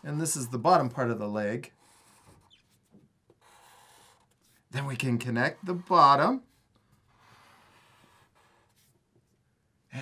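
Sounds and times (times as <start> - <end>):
markers scratching on paper: 1.7 - 9.0.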